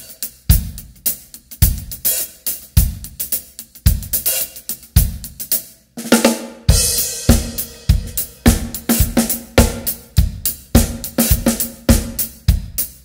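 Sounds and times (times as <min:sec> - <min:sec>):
drum kit playing funk groove: 0:00.0 - 0:13.0.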